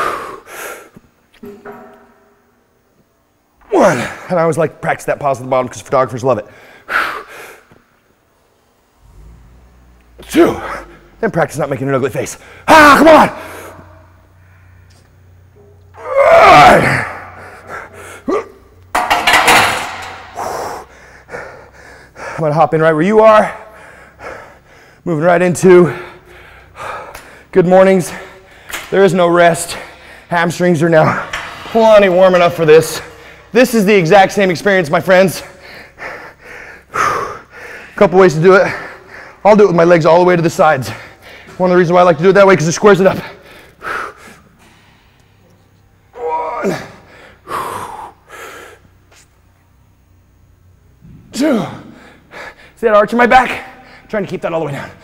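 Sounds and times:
man breathing hard: 0.0s - 1.0s, 17.2s - 18.5s, 20.0s - 22.4s, 23.6s - 25.1s, 25.9s - 27.5s, 35.5s - 38.0s, 38.7s - 39.4s, 43.3s - 45.4s, 47.0s - 49.0s, 51.8s - 52.8s
metal rattling: 18.9s - 20.8s
barbell clanking onto steel rack: 19.0s - 20.5s.

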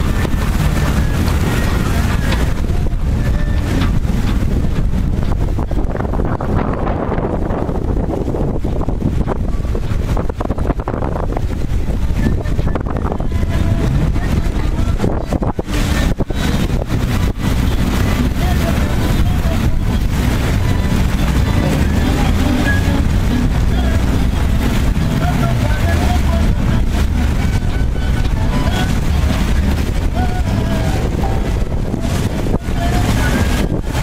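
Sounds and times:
boat engine rumble: 0.0s - 34.0s
wind buffeting microphone: 0.0s - 34.0s.

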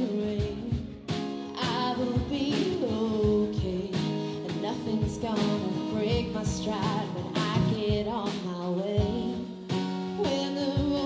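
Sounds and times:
drum kit beat: 0.0s - 11.0s
strummed acoustic guitar: 0.0s - 11.0s
woman singing: 0.0s - 11.0s.

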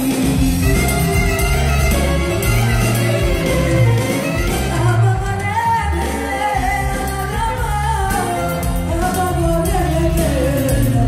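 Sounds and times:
bouzouki and band: 0.0s - 11.0s
woman singing into microphone: 4.4s - 11.0s.

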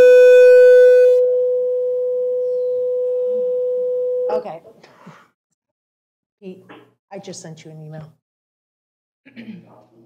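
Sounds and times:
steady electronic tone: 0.0s - 4.4s.

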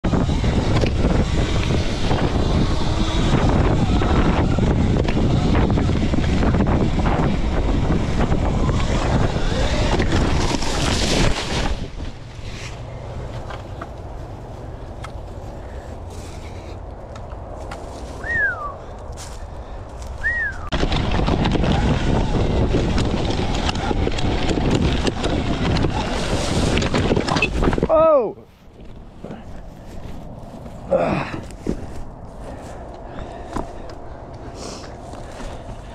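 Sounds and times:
wind rushing on microphone: 0.0s - 16.1s, 17.4s - 28.2s
dirt bike tyres on dirt trail: 0.0s - 35.9s
bike falling into grass: 9.1s - 13.6s, 25.2s - 28.0s.

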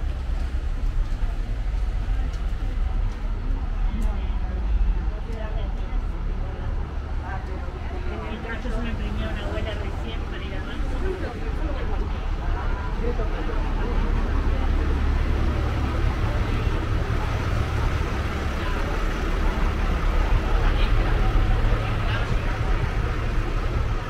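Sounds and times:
passers-by talking: 0.0s - 24.0s
traffic rumble: 0.0s - 24.0s.

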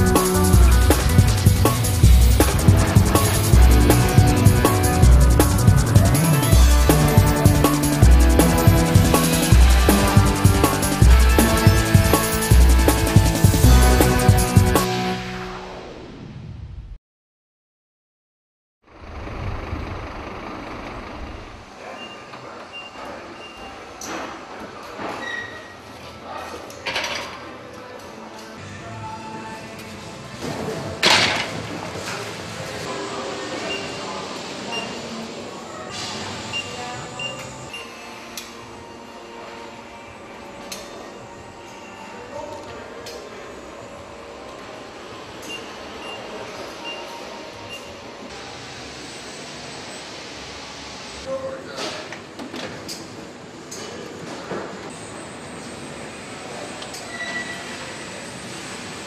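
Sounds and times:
low engine rumble: 0.0s - 14.4s, 18.9s - 21.8s
machinery running: 0.0s - 16.0s, 18.9s - 21.9s
loud rush of noise: 0.0s - 17.0s, 18.9s - 21.8s.

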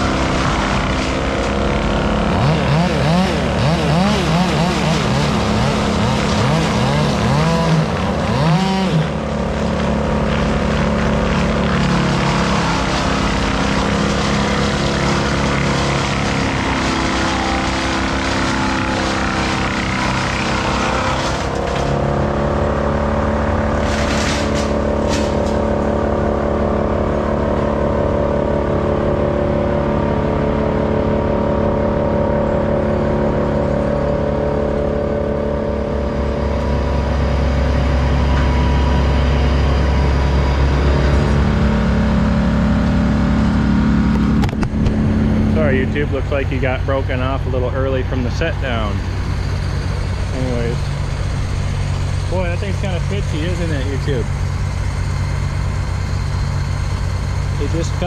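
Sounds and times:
engine running: 0.0s - 58.0s.

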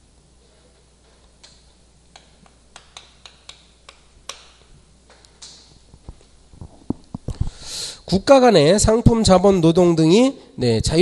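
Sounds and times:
chalk tapping on chalkboard: 2.2s - 4.7s.

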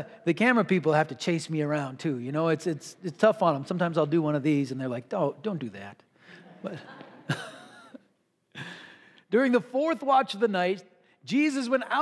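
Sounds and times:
man laughing breathily: 6.2s - 9.2s
faint breath: 8.5s - 9.3s.

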